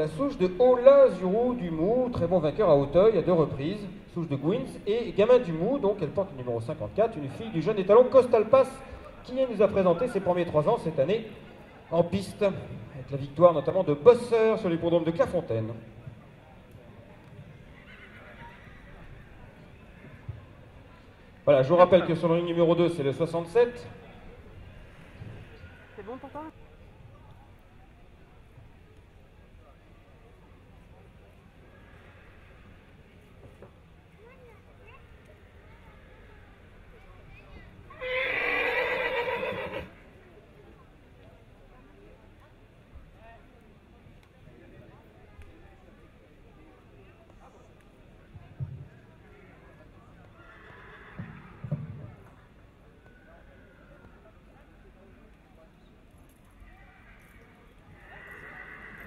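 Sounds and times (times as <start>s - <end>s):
low background noise: 0.0s - 59.0s
faint voices: 15.7s - 21.5s, 23.6s - 59.0s
horse whinnying faintly: 17.8s - 19.4s, 37.9s - 40.0s, 50.3s - 51.7s, 56.7s - 59.0s.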